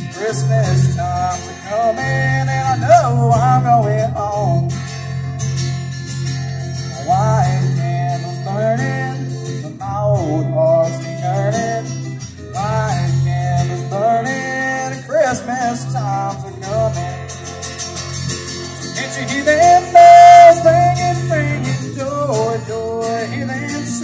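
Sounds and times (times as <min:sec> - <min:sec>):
country music on amplified guitars: 0:00.0 - 0:24.0.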